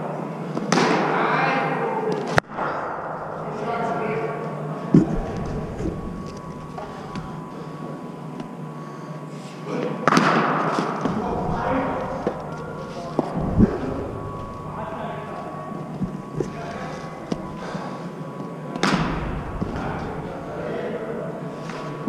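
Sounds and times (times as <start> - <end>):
dull low thud: 11.1 - 15.4.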